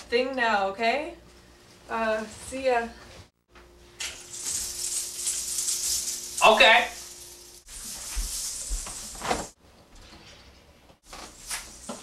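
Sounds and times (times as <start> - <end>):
beaded curtain rattling: 4.2 - 9.6.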